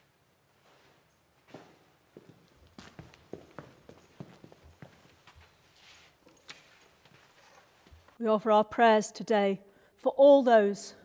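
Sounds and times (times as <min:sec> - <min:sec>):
faint footsteps on floor: 0:00.6 - 0:08.2.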